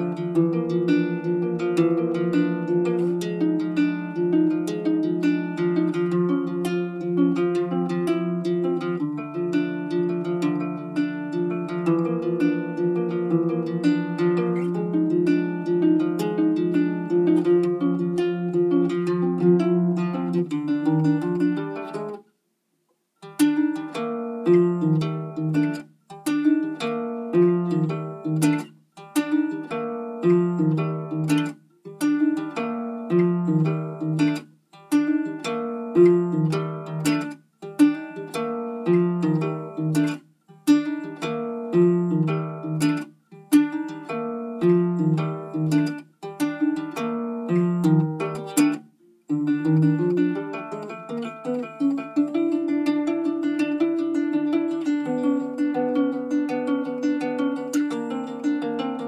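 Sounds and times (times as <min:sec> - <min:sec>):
ukulele chords: 0:00.0 - 0:22.3, 0:23.2 - 0:59.0.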